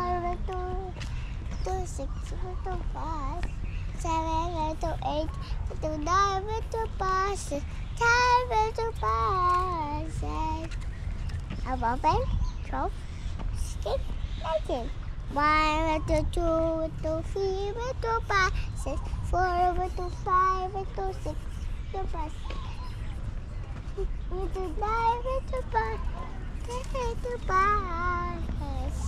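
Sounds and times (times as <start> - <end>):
young child singing: 0.0 - 10.8, 11.6 - 12.9, 13.6 - 22.8, 23.9 - 29.0.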